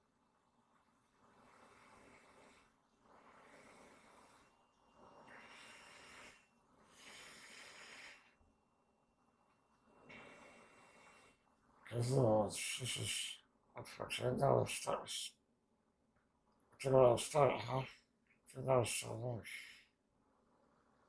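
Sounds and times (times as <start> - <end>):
breathing through tube: 1.2 - 8.4, 9.8 - 11.9.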